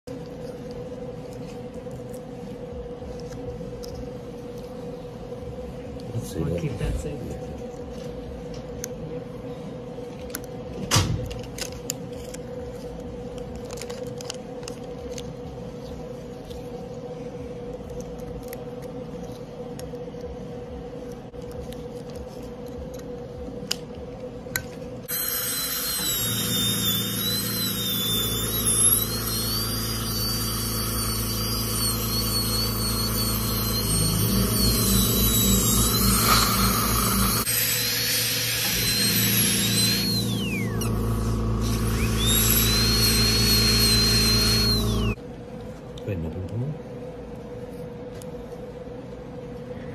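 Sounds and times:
dental drill whining: 0:25.0 - 0:45.2.

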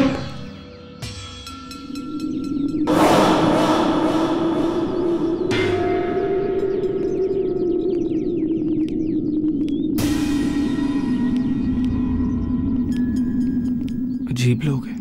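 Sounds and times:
low sustained drone: 0:01.9 - 0:14.2.

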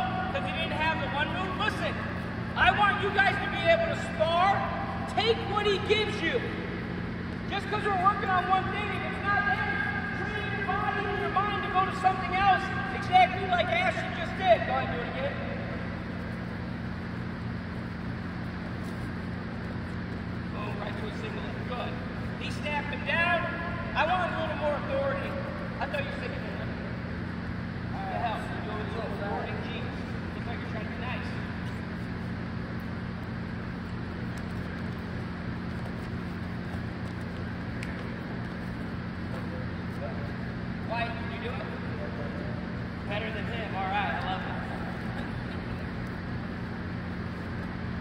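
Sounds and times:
people talking: 0:00.0 - 0:06.6, 0:07.5 - 0:15.9, 0:20.5 - 0:26.9, 0:27.9 - 0:31.5, 0:39.4 - 0:45.7
steady low hum: 0:00.0 - 0:48.0.

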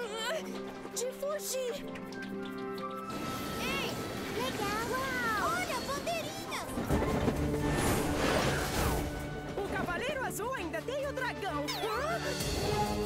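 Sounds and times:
cartoon background music: 0:00.0 - 0:13.0.

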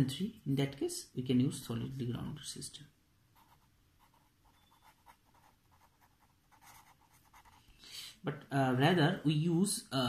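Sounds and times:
pen writing on paper: 0:03.4 - 0:07.6.

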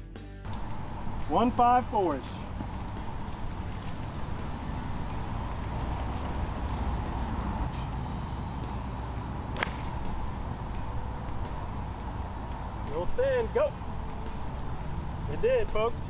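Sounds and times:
low rumble: 0:00.5 - 0:16.0
golf club striking ball: 0:02.4 - 0:15.3.

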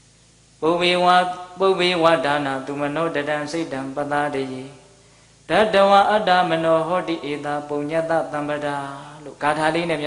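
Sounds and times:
person chanting into a microphone: 0:00.6 - 0:10.0.

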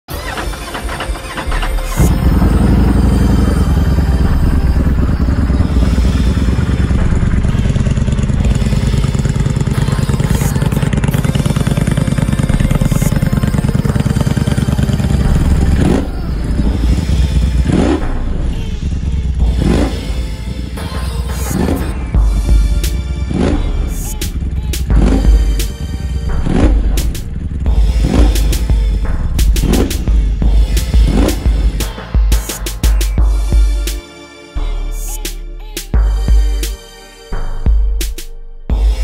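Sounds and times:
motorcycle engine idling: 0:00.2 - 0:33.9.

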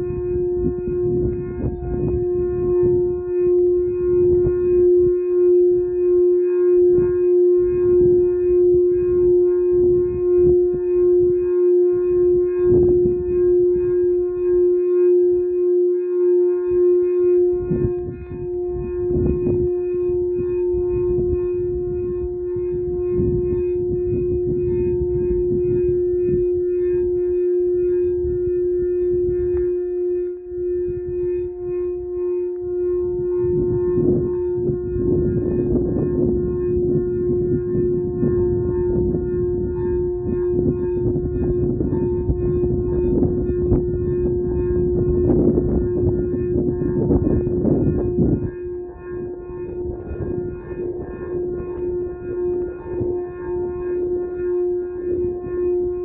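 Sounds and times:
low rumbling noise: 0:00.0 - 0:56.0
singing bowl tone: 0:00.0 - 0:56.0.

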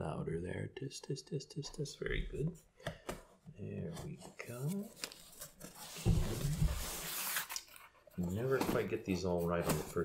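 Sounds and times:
cardboard box rustling: 0:04.6 - 0:10.0.

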